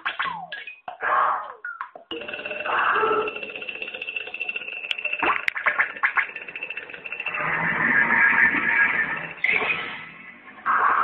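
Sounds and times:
alarm bell ringing: 2.1s - 9.4s.

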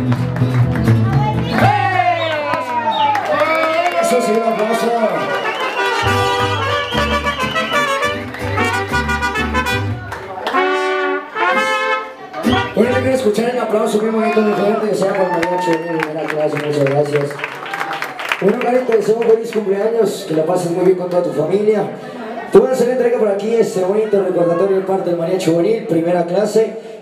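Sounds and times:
mariachi band playing: 0.0s - 15.1s
trumpets: 4.7s - 13.4s
low bass line: 6.1s - 10.1s.

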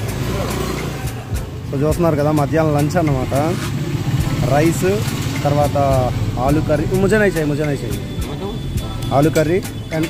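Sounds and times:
motor scooter engine running: 0.0s - 1.6s, 2.5s - 7.4s
man's voice: 1.3s - 10.0s
people's voices: 4.4s - 10.0s.

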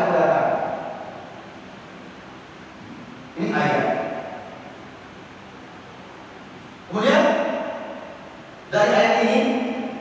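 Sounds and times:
spoken word echoing in hall: 0.0s - 1.6s, 3.1s - 4.9s, 6.8s - 10.0s.

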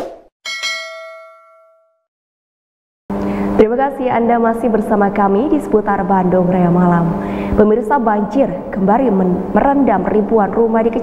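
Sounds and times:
bright bell-like ding: 0.4s - 2.1s.

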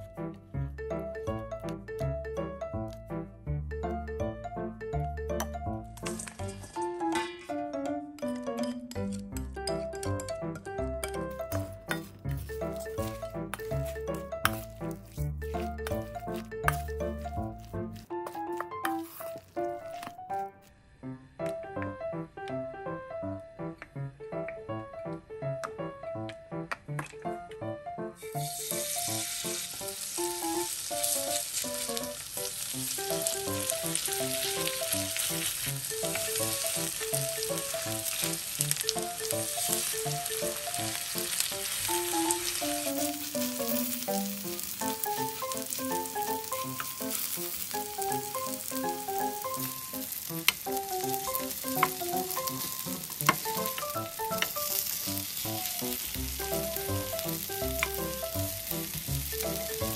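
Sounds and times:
pancakes sizzling in hot oil: 28.2s - 59.9s.

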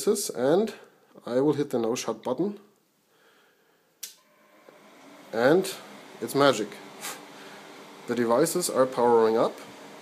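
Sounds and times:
cooling fans running: 4.2s - 10.0s.

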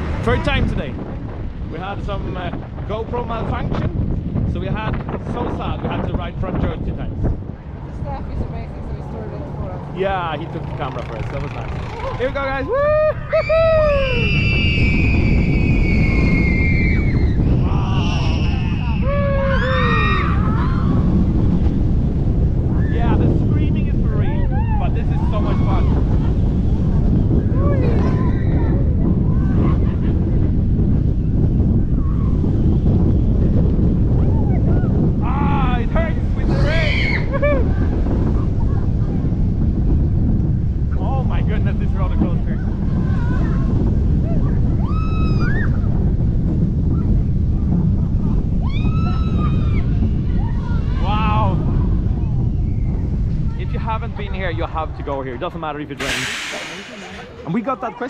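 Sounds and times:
roller coaster train running: 0.0s - 58.0s
wind rushing over microphone: 0.0s - 58.0s
riders screaming and whooping: 11.5s - 21.8s, 24.1s - 35.8s, 36.4s - 39.7s, 42.6s - 53.4s.

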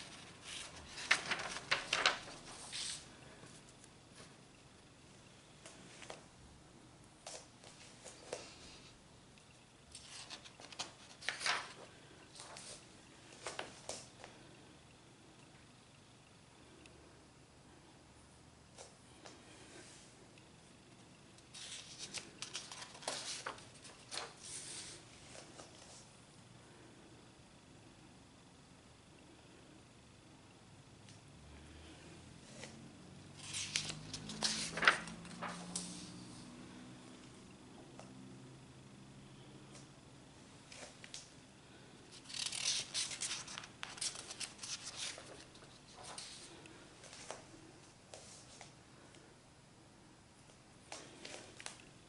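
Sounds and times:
paper sheets rustling and sliding: 0.0s - 3.1s, 10.0s - 12.8s, 21.5s - 25.4s, 33.4s - 36.2s, 42.2s - 46.6s.

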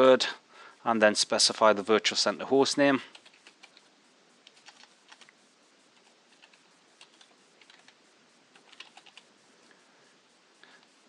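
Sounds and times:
typing on keyboard: 3.1s - 5.3s, 6.0s - 9.2s.

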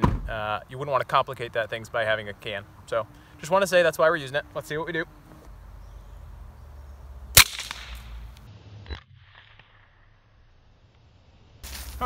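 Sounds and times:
suppressed pistol shot: 7.4s - 8.2s.

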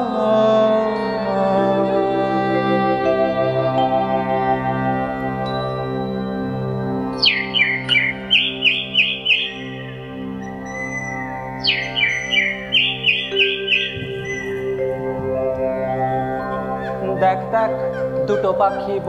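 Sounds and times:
drone-like organ music: 0.0s - 19.0s
bird chirping: 7.1s - 19.0s.

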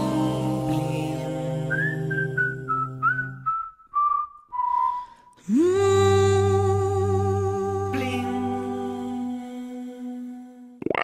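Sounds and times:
person whistling a melody: 1.7s - 5.2s.

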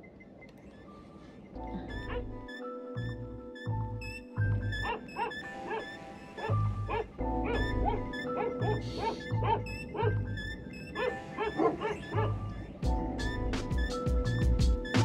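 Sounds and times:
background music: 0.0s - 15.0s
dogs barking: 1.8s - 2.6s, 4.6s - 12.7s.

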